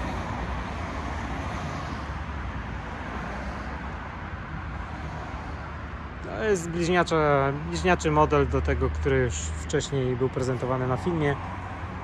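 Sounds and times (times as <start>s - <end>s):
distant road traffic rumble: 0.0s - 12.0s.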